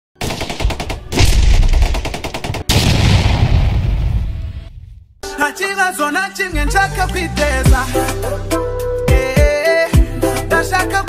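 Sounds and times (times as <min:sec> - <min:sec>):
rapid machine-gun fire: 0:00.2 - 0:03.6
loud blast: 0:01.1 - 0:05.2.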